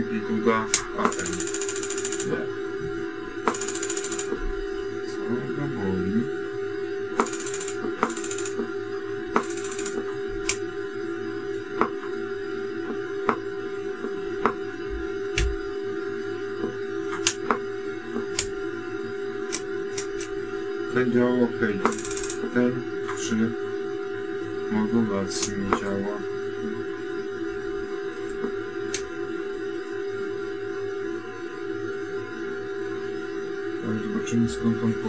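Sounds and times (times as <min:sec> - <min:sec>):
amplifier relay clicking: 0:19.5 - 0:20.3.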